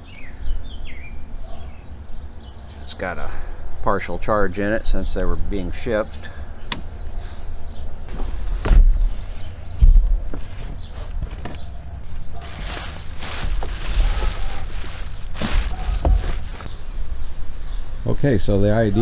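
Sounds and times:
plastic wrap crinkling: 12.1 - 16.7
handling thumps: 12.4 - 16.7.

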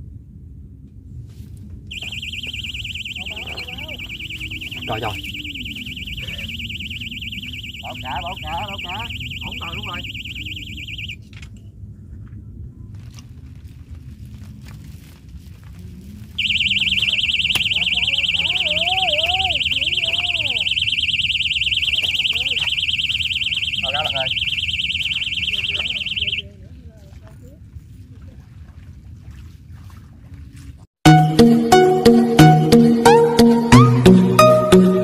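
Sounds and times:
fast-warbling bite alarm buzzer: 1.9 - 11.2, 16.4 - 26.4
voices calling out: 1.9 - 11.2, 16.4 - 26.6.

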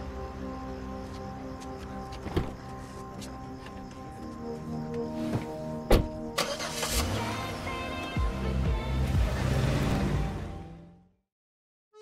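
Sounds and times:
film score music: 0.0 - 11.2
car engine starting: 6.0 - 11.1.

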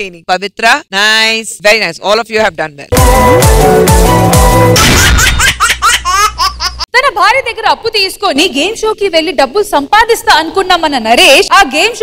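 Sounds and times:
low bass music: 2.9 - 5.1.

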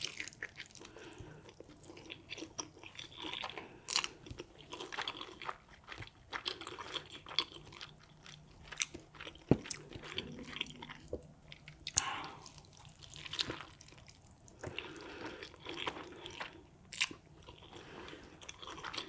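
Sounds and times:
wet chewing: 0.0 - 19.0.

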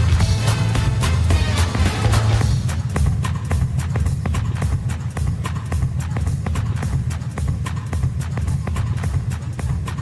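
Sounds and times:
heavy bass line: 0.0 - 5.5.

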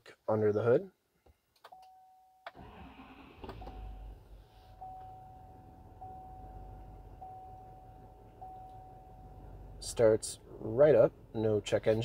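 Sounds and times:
diesel engine starting and idling: 2.5 - 11.8.

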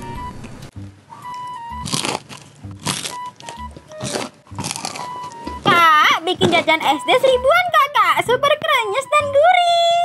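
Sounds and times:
light background music: 0.0 - 10.0
crunching bites of fried food: 1.3 - 5.6.

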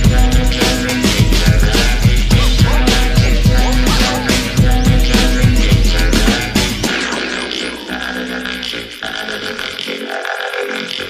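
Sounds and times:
breakbeat music: 0.0 - 11.0.

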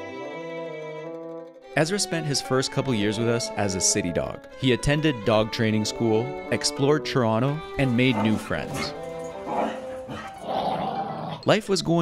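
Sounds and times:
background music: 0.0 - 12.0
dog vocal sounds: 8.1 - 11.4.

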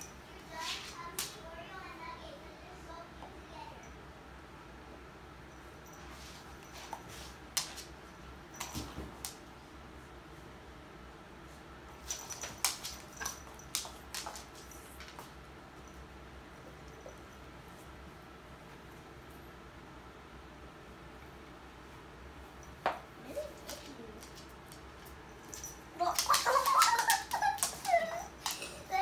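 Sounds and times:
claws clicking on wood floor: 12.0 - 15.3, 22.8 - 28.8.

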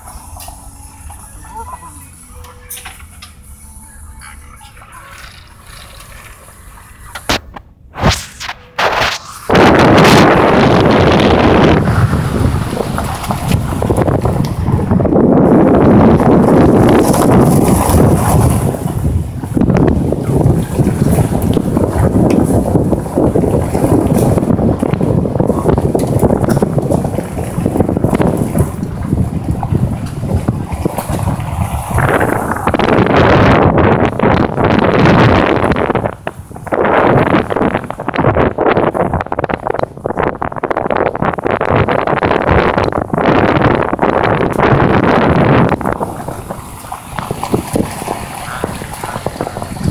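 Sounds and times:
wind buffeting microphone: 4.2 - 49.9.

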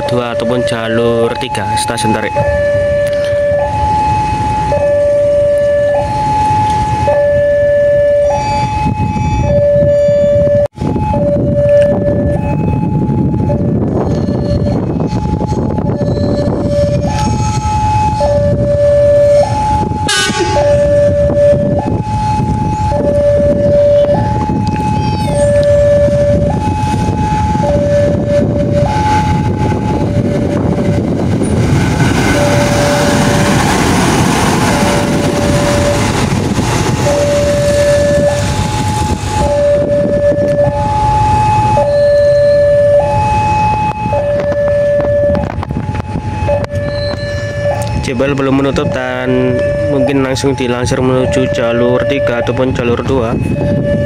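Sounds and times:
two-tone level-crossing alarm: 0.0 - 54.0
loud rushing noise: 26.3 - 41.7.

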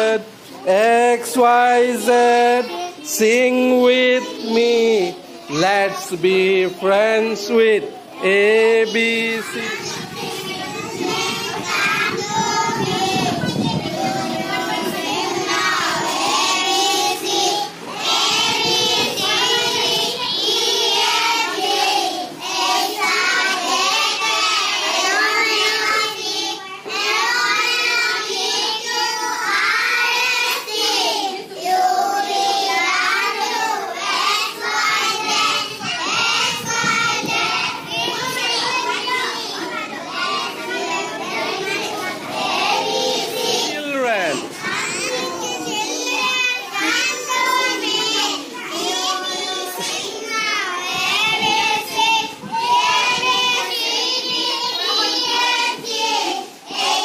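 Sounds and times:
children singing together: 0.0 - 57.0
children talking: 0.0 - 57.0.

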